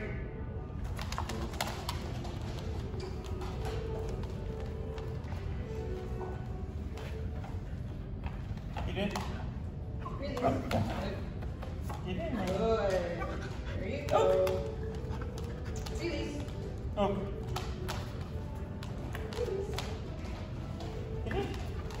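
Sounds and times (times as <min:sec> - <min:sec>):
faint background music: 0:00.0 - 0:22.0
dog claws clicking on hard floor: 0:00.9 - 0:05.2.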